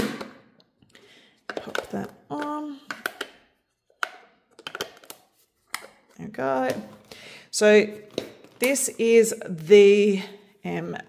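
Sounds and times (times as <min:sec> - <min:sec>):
plastic parts clicking and knocking: 0:00.0 - 0:07.1.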